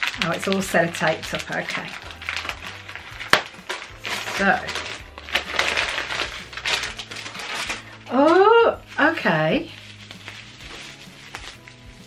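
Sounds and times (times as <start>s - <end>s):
packaging rustling and crinkling: 0.0s - 12.0s.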